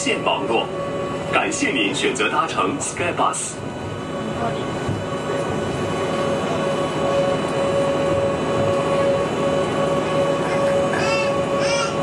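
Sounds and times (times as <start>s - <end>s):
bus engine and road rumble: 0.0s - 12.0s
constant high whine: 0.0s - 12.0s.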